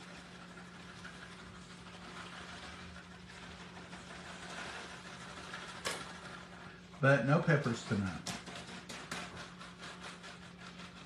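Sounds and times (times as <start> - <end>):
shredded cheese rustling: 0.0 - 8.2.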